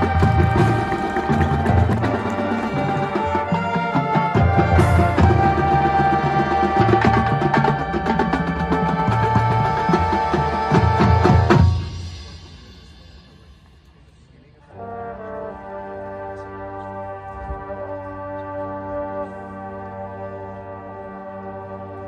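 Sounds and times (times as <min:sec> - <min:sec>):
brass section holding a chord: 0:14.7 - 0:22.0.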